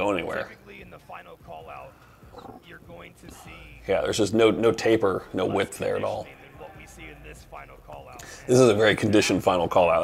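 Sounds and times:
man speaking commentary: 0.0 - 10.0.

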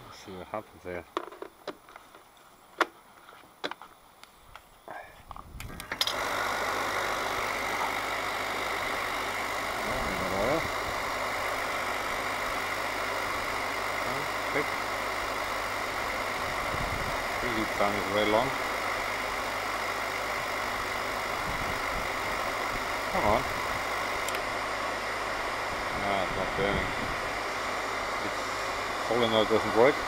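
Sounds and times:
burner fan and pump whirring: 3.6 - 30.0.

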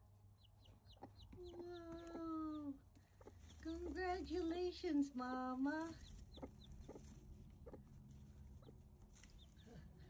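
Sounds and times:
chick peeping: 0.3 - 4.7, 5.8 - 9.9
hen clucking softly: 0.4 - 3.9, 6.0 - 7.9.

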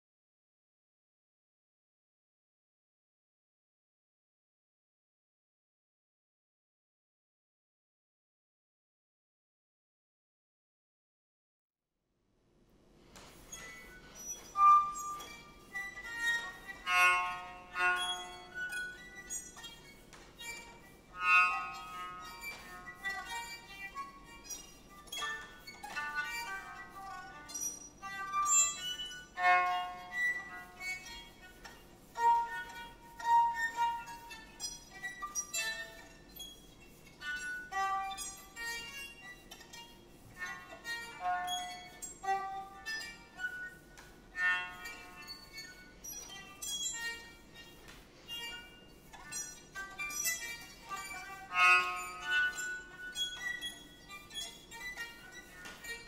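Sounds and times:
solo violin playing: 13.5 - 56.0.

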